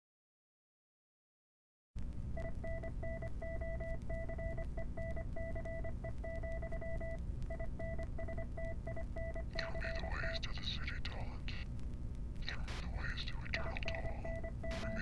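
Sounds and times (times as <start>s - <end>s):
low steady rumble: 2.0s - 15.0s
electronic beeps: 2.4s - 10.4s, 13.6s - 15.0s.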